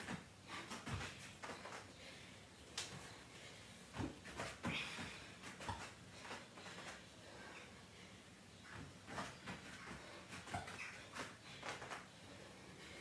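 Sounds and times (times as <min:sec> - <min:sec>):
hands and feet tapping on a mat: 0:00.0 - 0:01.9, 0:03.9 - 0:07.0, 0:08.7 - 0:12.1.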